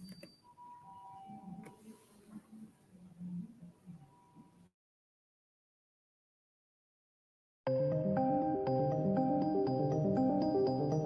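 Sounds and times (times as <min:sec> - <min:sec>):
electronic music notes: 0:07.7 - 0:11.0.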